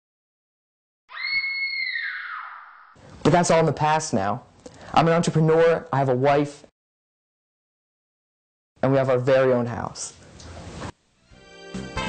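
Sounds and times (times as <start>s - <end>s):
high-pitched shriek: 1.1s - 3.0s.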